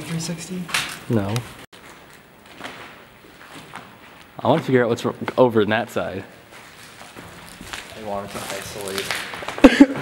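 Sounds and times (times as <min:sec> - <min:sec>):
faint footsteps on debris: 0:01.8 - 0:04.8, 0:06.4 - 0:09.7.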